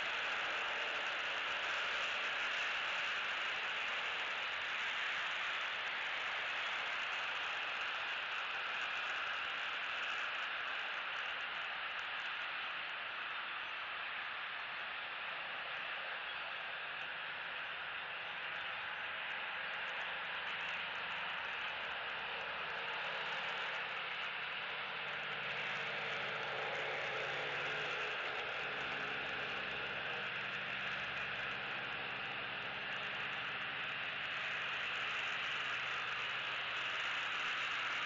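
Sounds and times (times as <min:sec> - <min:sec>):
faint low engine hum: 0:00.0 - 0:38.0
tyre hiss from road traffic: 0:00.0 - 0:38.0.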